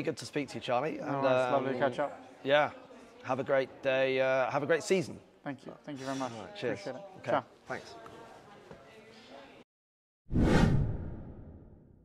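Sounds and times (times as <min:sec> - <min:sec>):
whoosh with deep boom: 0:10.3 - 0:11.9.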